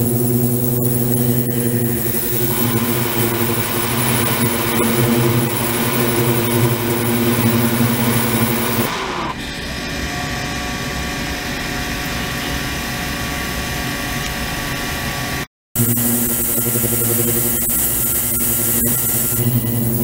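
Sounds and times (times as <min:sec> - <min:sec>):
hissing buzz with high tones: 0:00.0 - 0:09.4, 0:11.6 - 0:20.0
electrical hum and buzz: 0:00.0 - 0:20.0.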